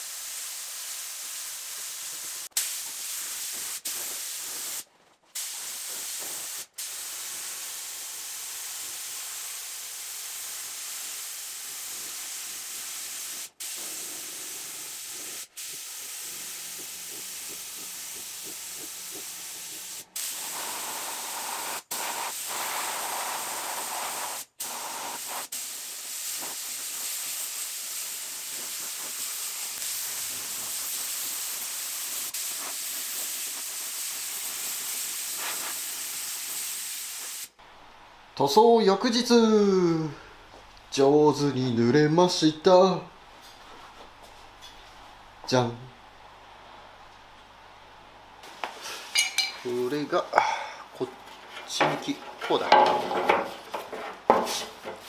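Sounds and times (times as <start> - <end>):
spray gun hissing: 0.0 - 37.6, 50.9 - 55.0.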